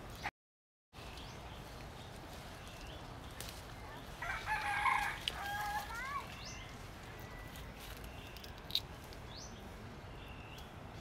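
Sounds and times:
small birds chirping: 1.0 - 4.2, 5.9 - 11.0
rooster crowing: 4.2 - 6.0.

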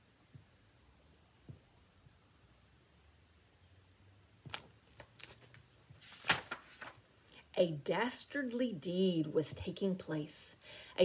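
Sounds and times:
faint low room hum: 0.0 - 11.0
book rustling and tapping: 4.4 - 7.0.

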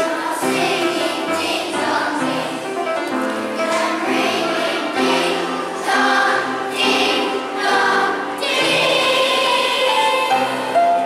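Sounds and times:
children's choir singing: 0.0 - 11.0.

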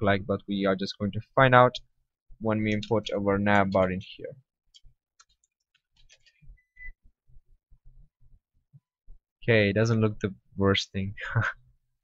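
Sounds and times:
keyboard and mouse clicks: 2.6 - 3.9, 4.7 - 6.6.

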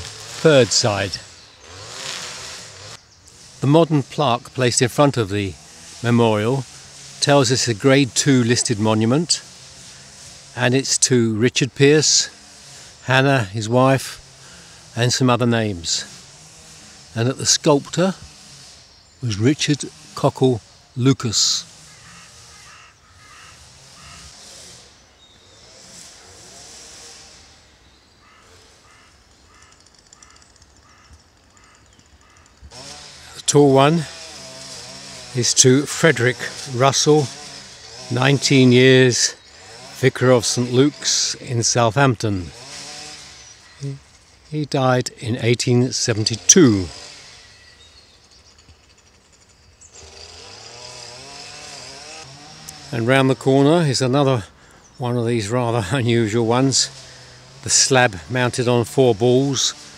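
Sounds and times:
steady outdoor hiss: 0.0 - 59.9
strimmer engine revving: 0.0 - 59.9.

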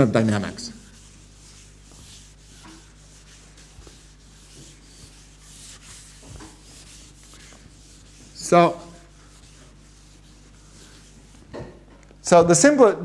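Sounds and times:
steady low hum: 0.0 - 12.4
faint rubbing and scratching: 0.6 - 11.7.

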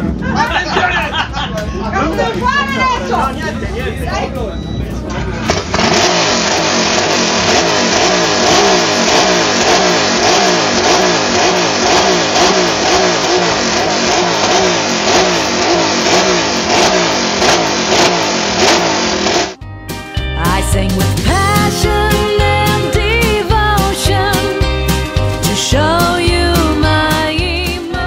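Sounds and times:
motorcycle engine revving: 5.3 - 19.6.

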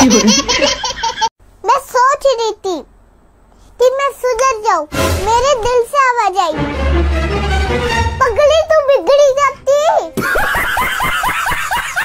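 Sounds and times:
person laughing hard: 0.0 - 1.3, 10.2 - 12.0.

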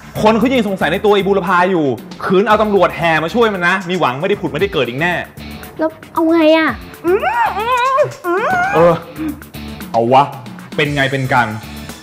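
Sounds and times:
drama music: 0.0 - 12.0
person exclaiming: 7.0 - 9.4.

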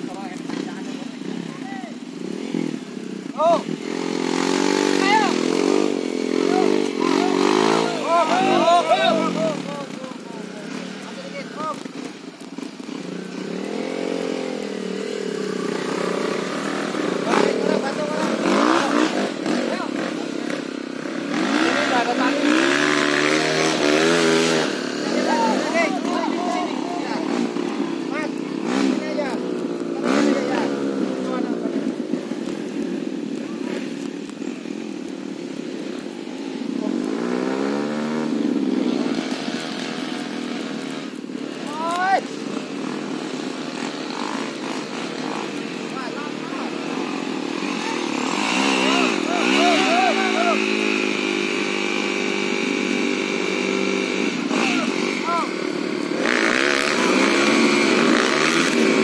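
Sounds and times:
trail bike engines revving: 0.0 - 59.0
voices shouting: 0.0 - 59.0.

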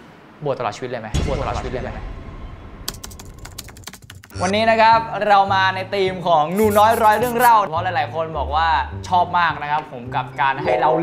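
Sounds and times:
keyboard typing clicks: 2.9 - 4.4.

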